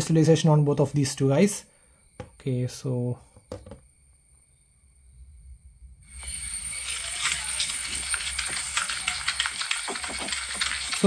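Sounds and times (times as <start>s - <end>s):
crackly rustle with clicks: 6.2s - 11.0s.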